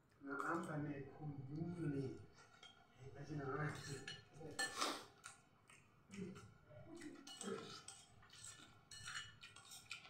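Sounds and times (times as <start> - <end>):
metal spoon scraping a plate: 3.6 - 5.1, 7.2 - 10.0.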